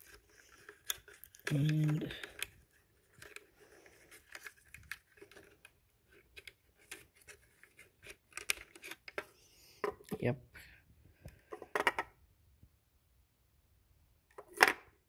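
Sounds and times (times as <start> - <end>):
small plastic clicks and scrapes: 0.0 - 9.4.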